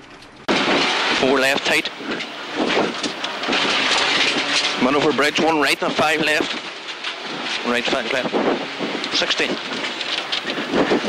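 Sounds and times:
rally car engine and road noise: 0.0s - 11.0s.

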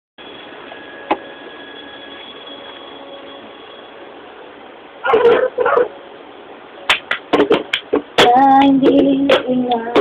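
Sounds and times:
faint steady tones: 0.2s - 10.0s.

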